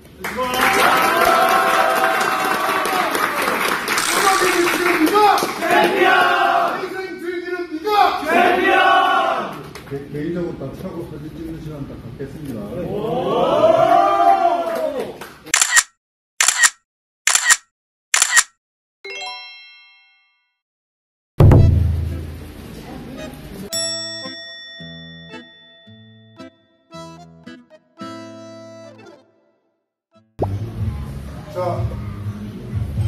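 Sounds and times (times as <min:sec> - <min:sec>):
camera shutter clicks: 0:04.0 - 0:04.6, 0:15.6 - 0:18.5
short note: 0:21.4 - 0:22.7
background music: 0:26.2 - 0:29.5.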